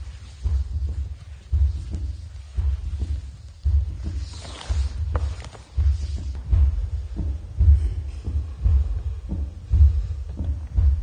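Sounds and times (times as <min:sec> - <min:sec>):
slow deep heartbeat: 0:00.0 - 0:11.0.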